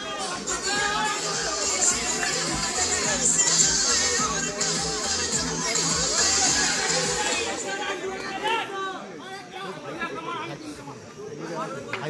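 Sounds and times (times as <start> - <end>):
voices chattering and calling: 0.0 - 12.0.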